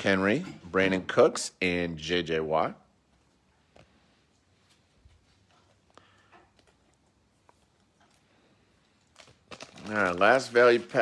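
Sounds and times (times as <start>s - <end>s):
man talking: 0.0s - 2.9s, 9.8s - 11.0s
foil wrapper crackling and tearing: 8.9s - 11.0s.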